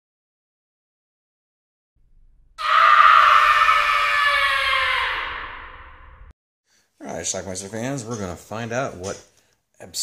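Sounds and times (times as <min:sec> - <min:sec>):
horror scream sliding down: 0:02.6 - 0:06.3.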